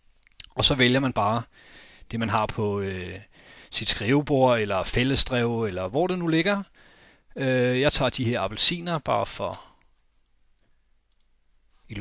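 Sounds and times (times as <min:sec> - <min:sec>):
computer mouse clicks: 0:11.1 - 0:11.4.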